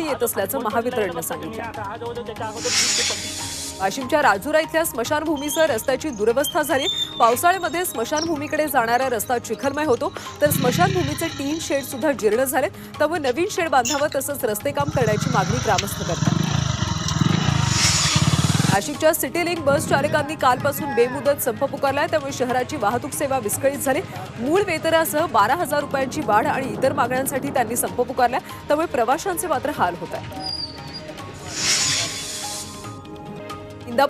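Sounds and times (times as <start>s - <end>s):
background music: 0.0s - 34.0s
rushing whoosh: 16.3s - 18.8s, 31.2s - 32.9s.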